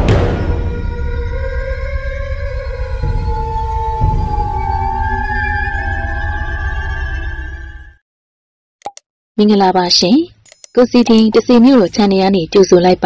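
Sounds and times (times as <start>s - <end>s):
deep rumble: 0.0s - 7.4s
long pitch-bending tones: 0.5s - 8.0s.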